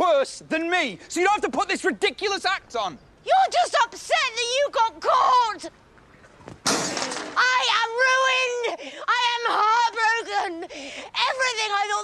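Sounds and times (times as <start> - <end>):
shattering crash: 6.6 - 7.4.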